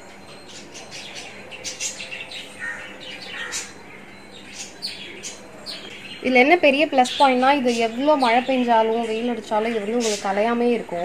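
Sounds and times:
small birds chirping: 0:00.0 - 0:11.0.

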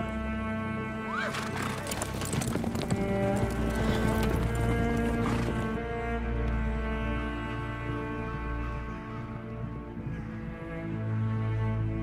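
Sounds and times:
low bowed strings: 0:00.0 - 0:12.0
horse hooves clip-clopping: 0:01.1 - 0:05.8
horse whinnying: 0:01.1 - 0:05.8.

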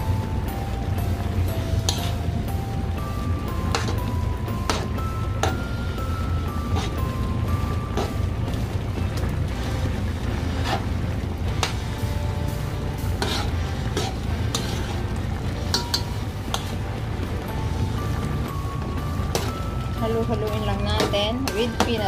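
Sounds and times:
spoon stirring thick stew: 0:13.1 - 0:16.9
spoon clinking against pot: 0:15.7 - 0:16.8.

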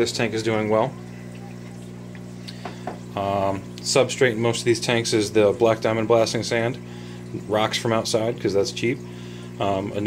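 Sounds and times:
aquarium air pump humming: 0:00.0 - 0:10.0
faint bubbling water: 0:00.0 - 0:10.0.

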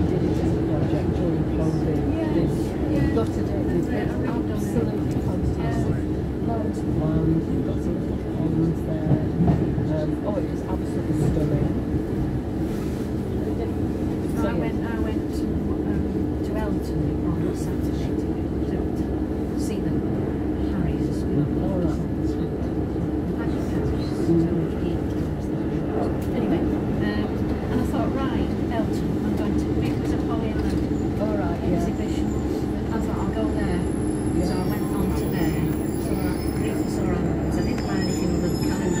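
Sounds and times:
train diesel engine drone: 0:00.0 - 0:39.0.

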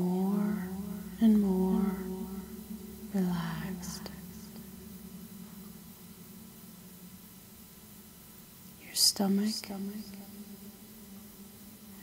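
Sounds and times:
woman whispering: 0:00.0 - 0:04.7, 0:08.8 - 0:10.4
faint low hum: 0:00.0 - 0:12.0.

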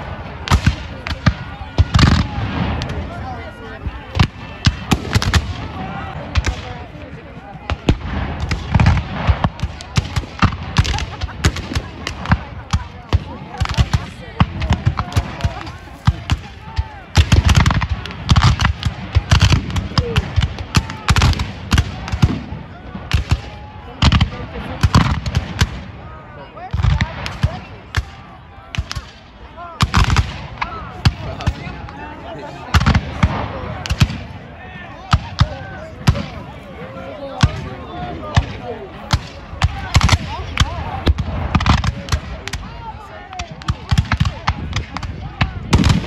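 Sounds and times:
rifle shots and volleys: 0:43.4 - 0:46.0.

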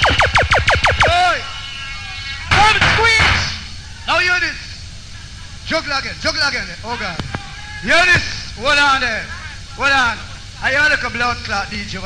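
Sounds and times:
falling electronic zap sweeps: 0:00.0 - 0:01.6
low hum: 0:00.0 - 0:02.6.

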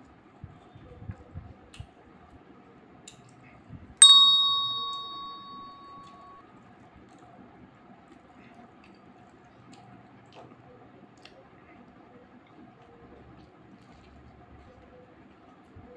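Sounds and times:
bright bell-like ding: 0:04.0 - 0:06.3.

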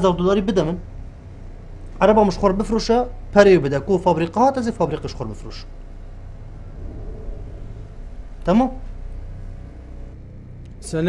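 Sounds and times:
low rumble and hum: 0:00.0 - 0:11.0.

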